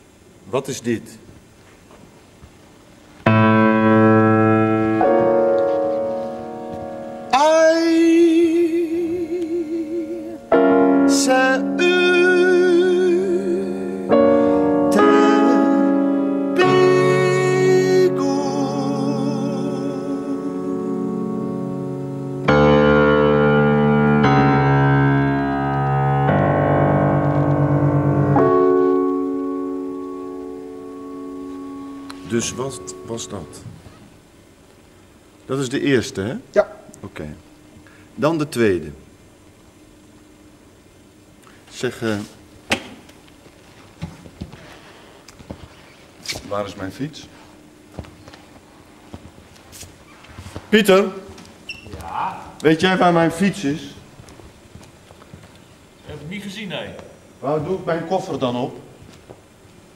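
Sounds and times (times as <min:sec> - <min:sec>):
grand piano chords: 0:03.2 - 0:40.7, 0:52.5 - 0:55.0.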